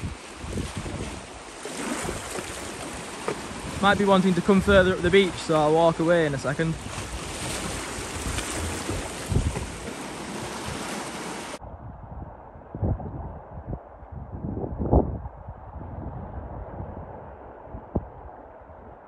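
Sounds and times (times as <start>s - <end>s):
waves breaking over rocks: 0.0s - 11.6s
muffled wind rumble: 0.0s - 19.0s
wind on microphone: 0.0s - 19.0s.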